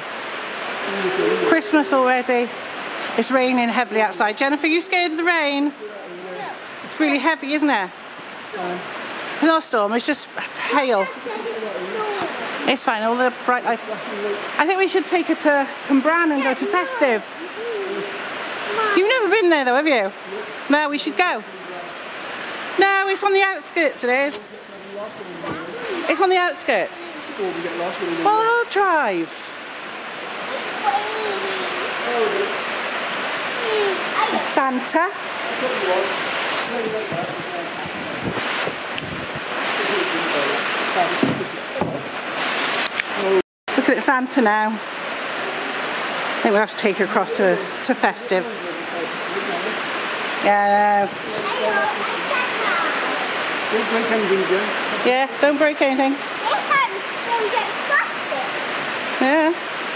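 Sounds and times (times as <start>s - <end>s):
heavy rain on roof: 0.0s - 59.9s
steady rushing hiss: 0.0s - 59.9s
faint voices: 0.4s - 22.2s, 24.0s - 29.6s, 30.2s - 42.2s.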